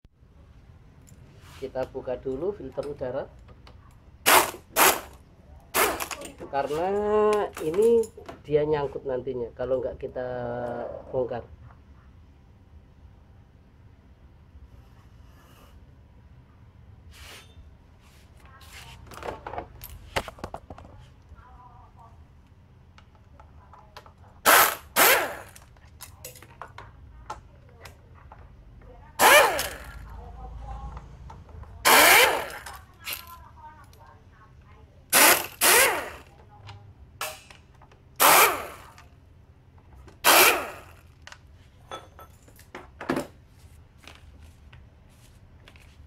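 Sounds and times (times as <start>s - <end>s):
pneumatic impact wrench bursts: 4.2s - 6.2s, 24.4s - 25.6s, 29.2s - 30.0s, 31.8s - 33.3s, 35.1s - 36.3s, 38.2s - 39.0s, 40.2s - 41.0s.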